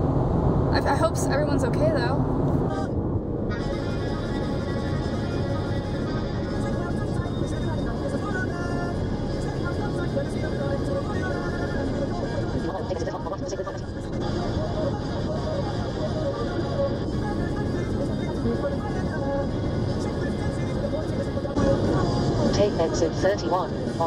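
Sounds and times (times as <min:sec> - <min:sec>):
car road and engine noise: 0:00.0 - 0:24.0
faint music: 0:03.6 - 0:24.0.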